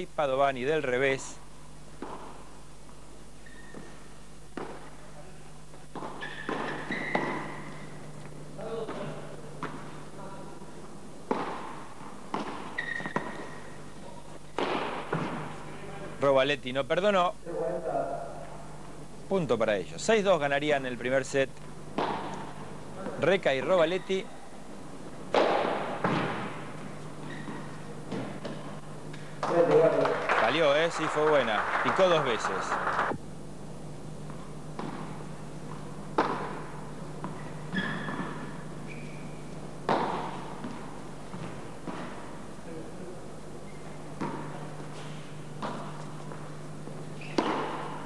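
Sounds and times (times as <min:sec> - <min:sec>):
shoe squeaks: 0:03.4 - 0:04.1, 0:06.1 - 0:08.0, 0:12.6 - 0:14.2, 0:23.7 - 0:24.4, 0:27.0 - 0:28.6, 0:37.3 - 0:39.6, 0:43.6 - 0:44.2, 0:47.1 - 0:48.0
padel ball striking racket: 0:05.9 - 0:07.7, 0:11.2 - 0:13.6, 0:14.5 - 0:15.4, 0:21.9 - 0:22.5, 0:25.3 - 0:26.6, 0:36.1 - 0:37.4, 0:39.8 - 0:42.1, 0:47.2 - 0:48.0.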